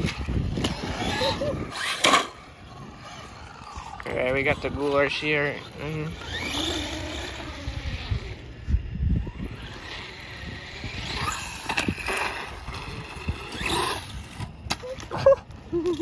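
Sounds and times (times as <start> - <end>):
electric motor whining: 0.0 - 15.1
wind rumbling on microphone: 0.0 - 16.0.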